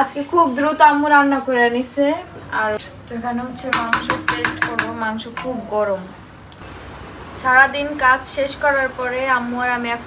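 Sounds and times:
woman talking: 0.0 - 6.2
taps on metal cooking pots: 3.7 - 5.6.

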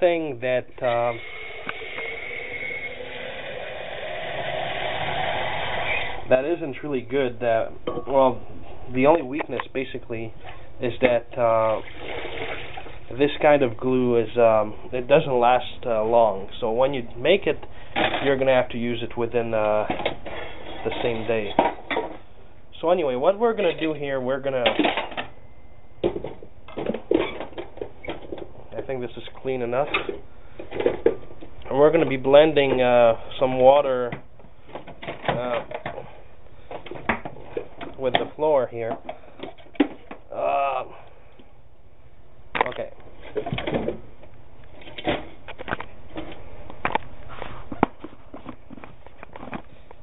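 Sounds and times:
containers knocking and clattering: 26.0 - 28.5, 29.8 - 32.9.

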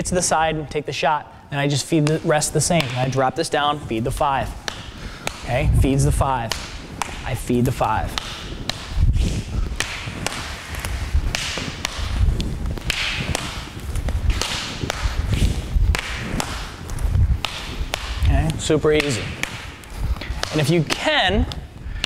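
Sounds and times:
swishing movement: 2.2 - 20.7.

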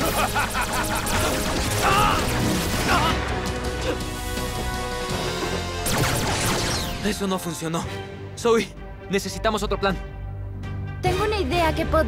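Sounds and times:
action score music: 0.0 - 12.0.

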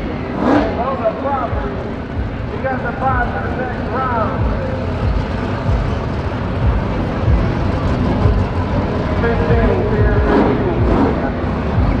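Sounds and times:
race car engine running: 0.0 - 12.0
announcer talking: 0.7 - 5.9, 9.1 - 11.5.

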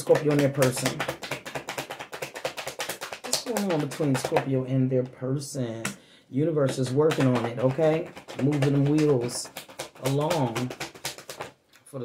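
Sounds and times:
cards being shuffled: 0.0 - 4.5, 6.7 - 11.6.

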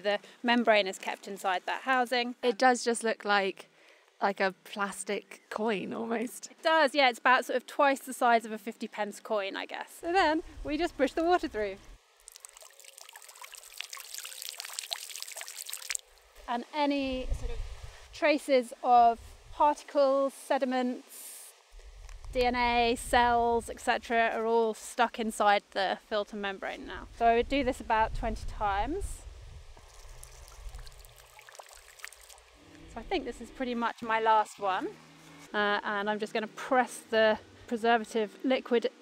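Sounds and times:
water squirting and trickling: 12.1 - 16.4, 29.8 - 32.9.

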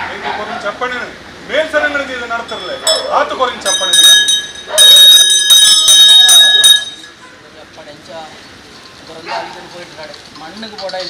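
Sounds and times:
metal bell ringing: 2.4 - 7.2.

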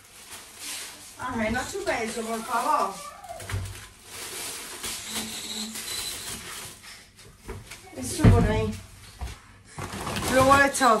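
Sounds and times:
groceries rustling and knocking: 0.0 - 11.0.

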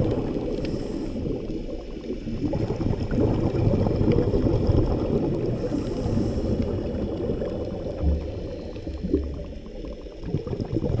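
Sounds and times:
underwater rumble of moving water: 0.0 - 11.0.

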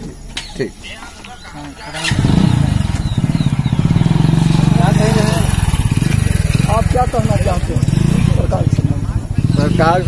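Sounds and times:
motorcycle engine starting and running: 1.9 - 10.0.

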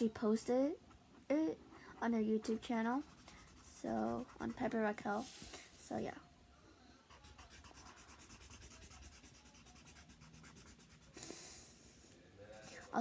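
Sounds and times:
felt-tip marker rubbing on paper: 2.0 - 5.4, 7.1 - 11.2.

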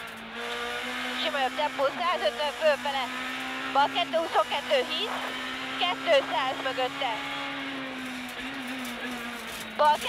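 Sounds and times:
car engine running: 0.0 - 10.0
road and tyre noise: 0.0 - 10.0.

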